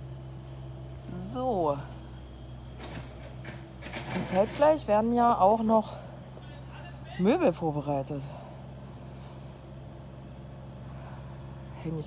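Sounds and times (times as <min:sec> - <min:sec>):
low machine hum: 0:00.0 - 0:12.0.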